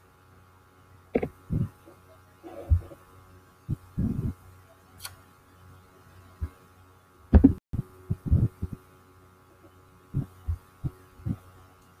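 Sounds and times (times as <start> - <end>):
faint electrical hum: 0.0 - 12.0
soft low thumps: 1.2 - 1.8, 7.3 - 8.8, 10.1 - 11.4.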